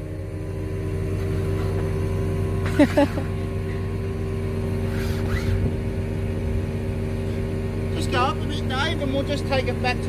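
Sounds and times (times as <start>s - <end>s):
truck engine running: 0.0s - 10.0s.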